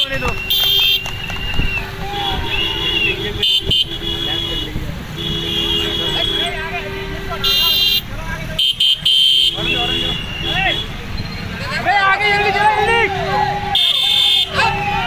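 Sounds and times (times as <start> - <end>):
people calling out: 0.0 - 8.0, 9.0 - 15.0
vehicle horns honking: 0.0 - 11.5, 12.3 - 14.9.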